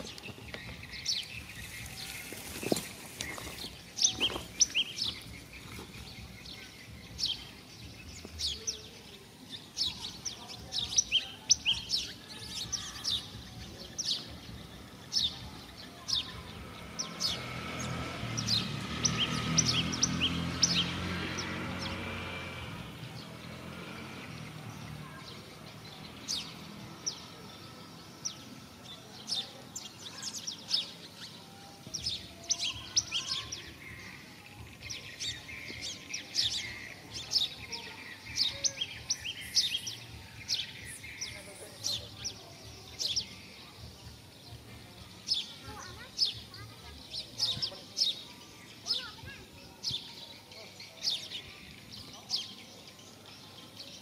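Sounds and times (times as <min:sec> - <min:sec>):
small birds chirping: 0:00.0 - 0:54.0.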